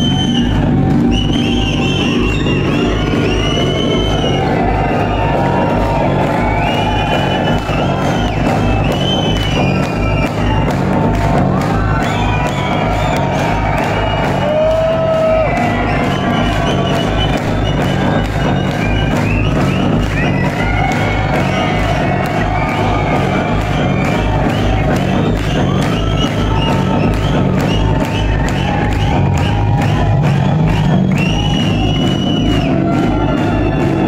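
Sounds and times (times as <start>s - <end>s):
crowd cheering and whooping: 0.0s - 34.0s
electronic dance music: 0.0s - 34.0s.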